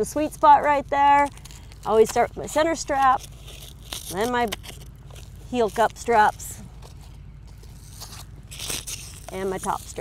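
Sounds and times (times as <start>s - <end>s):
hook-and-loop straps rustling: 0.0s - 10.0s.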